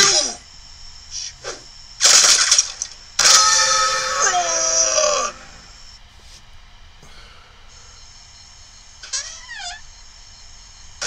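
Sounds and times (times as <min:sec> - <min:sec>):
cartoon rifle fire: 0:02.0 - 0:04.9.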